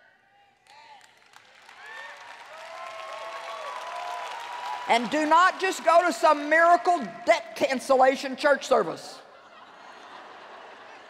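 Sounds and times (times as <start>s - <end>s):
large audience applauding: 0.6s - 6.8s.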